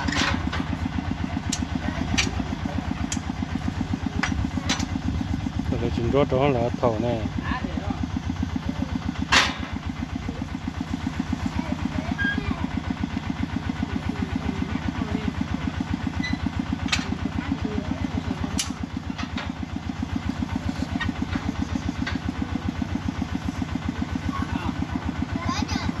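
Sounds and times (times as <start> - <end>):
small engine thumping steadily: 0.0 - 26.0.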